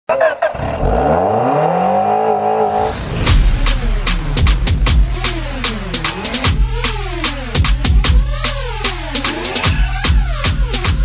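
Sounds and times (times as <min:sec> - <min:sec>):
car engine revving: 0:00.4 - 0:11.0
electronic music with driving beat: 0:03.2 - 0:11.0.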